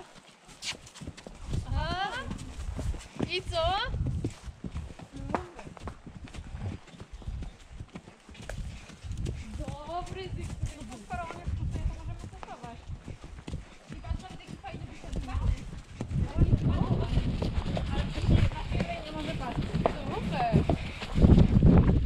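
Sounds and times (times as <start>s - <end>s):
hooves clip-clopping on dirt: 0.0s - 22.0s
indistinct voices talking: 13.9s - 20.9s.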